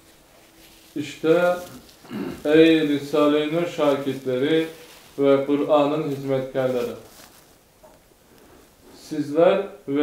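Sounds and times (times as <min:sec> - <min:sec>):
young man reading aloud: 0:00.8 - 0:07.4, 0:08.9 - 0:10.0.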